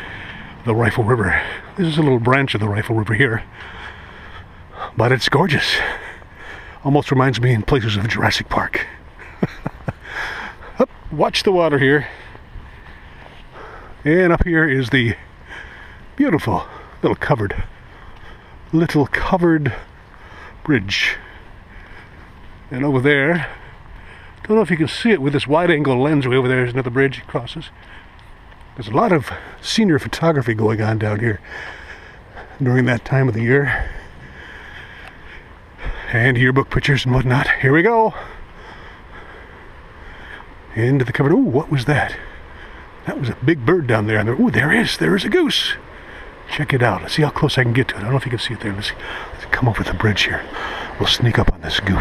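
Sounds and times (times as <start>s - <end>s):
outdoor background hiss: 0.0s - 52.0s.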